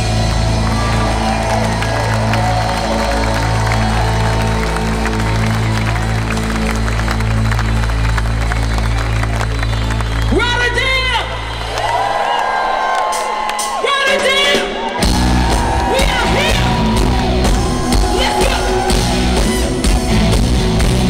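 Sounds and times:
audience clapping and cheering: 0.0 - 21.0.

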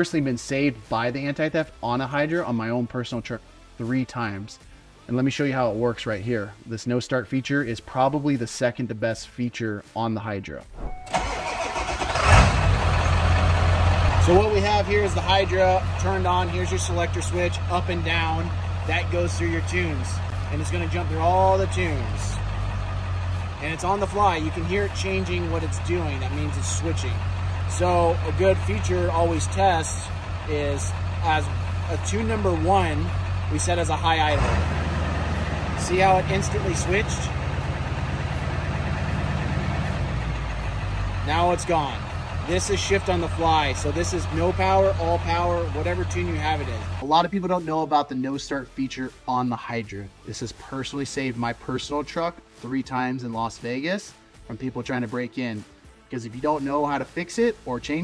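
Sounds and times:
diesel engine idling: 11.1 - 47.0.

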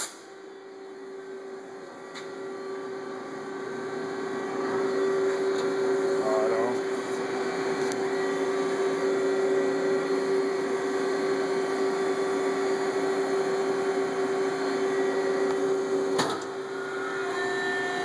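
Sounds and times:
milling machine humming: 0.0 - 18.0.

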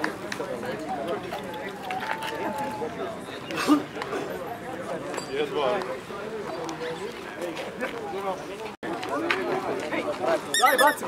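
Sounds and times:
voices talking: 0.3 - 5.2, 9.8 - 11.0
rubber squeaky toy squeaks: 10.5 - 11.0.

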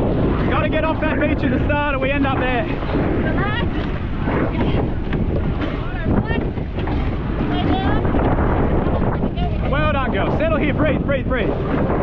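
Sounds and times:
water rushing and splashing: 0.0 - 12.0
wind buffeting microphone: 0.0 - 12.0.

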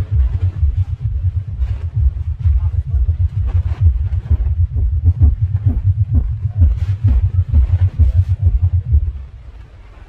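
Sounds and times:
rapid deep bass pulses: 0.0 - 10.0.

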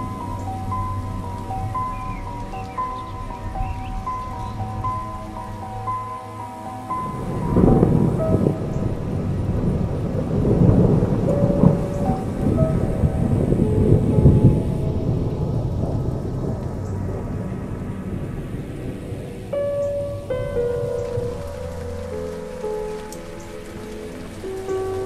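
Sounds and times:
soft music: 0.0 - 25.0
thunder rumbling: 0.0 - 25.0.

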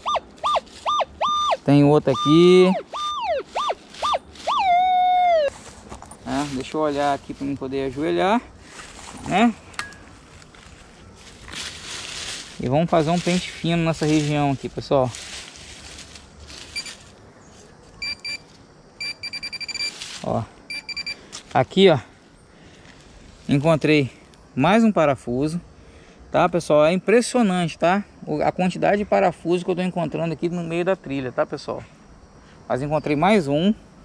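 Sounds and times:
metal detector beeps: 0.0 - 5.5, 16.7 - 17.0, 18.0 - 20.0, 20.7 - 21.2.

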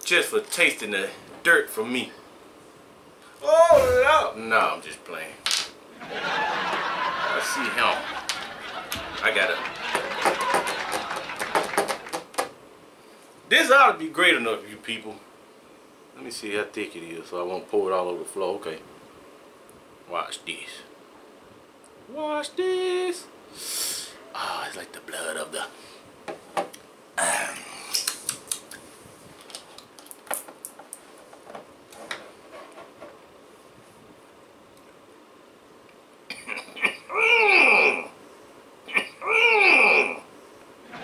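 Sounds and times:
person breathy hiss: 23.5 - 24.2
small sharp clicks: 27.9 - 28.8.

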